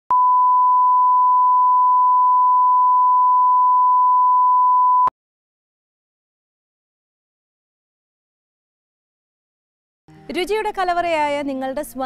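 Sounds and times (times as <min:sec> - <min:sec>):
test tone beep: 0:00.1 - 0:05.1.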